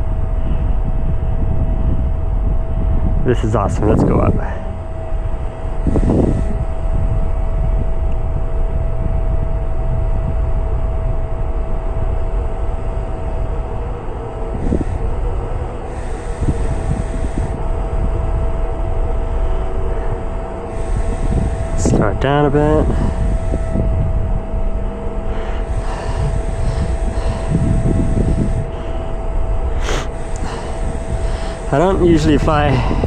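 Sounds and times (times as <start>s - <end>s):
cooling fan whine: 0.0s - 33.0s
wind buffeting microphone: 0.0s - 33.0s.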